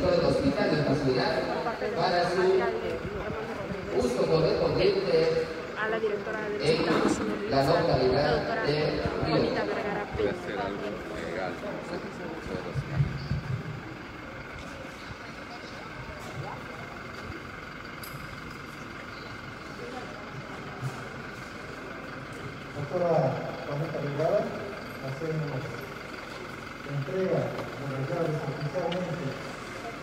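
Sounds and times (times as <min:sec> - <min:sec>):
man speaking into a microphone: 0:00.0 - 0:02.8, 0:03.9 - 0:05.7, 0:06.6 - 0:13.3, 0:26.9 - 0:29.4
steady background noise: 0:00.0 - 0:30.0.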